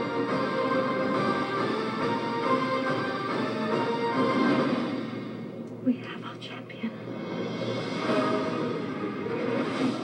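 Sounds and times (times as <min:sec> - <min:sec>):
movie trailer music: 0:00.0 - 0:10.0.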